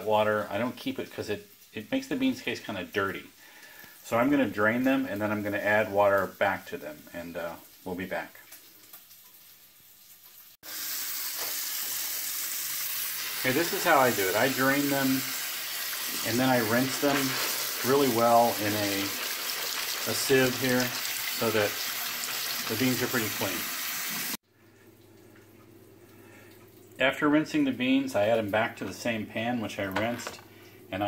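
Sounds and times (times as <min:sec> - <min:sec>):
tap water running: 0:00.0 - 0:30.9.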